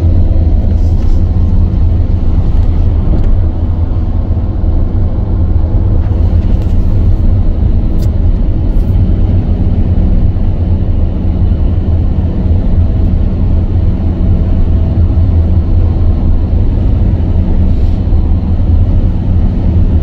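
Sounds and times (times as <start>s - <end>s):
vehicle engine and tyres rumbling: 0.0s - 20.0s.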